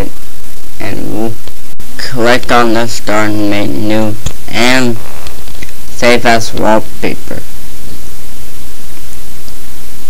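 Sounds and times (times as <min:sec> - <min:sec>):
faint low hum: 0:00.0 - 0:10.0
microphone hiss and static: 0:00.0 - 0:10.0.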